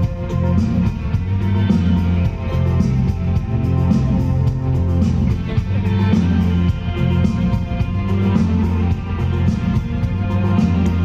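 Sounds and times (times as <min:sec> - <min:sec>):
electric guitar: 0:00.0 - 0:11.0
pop-rock band playing: 0:00.0 - 0:11.0.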